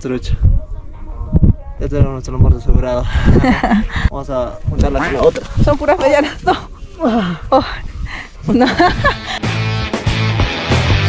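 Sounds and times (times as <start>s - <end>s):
man laughing: 3.2s - 4.0s, 8.4s - 9.6s
background music with guitar: 9.2s - 11.0s.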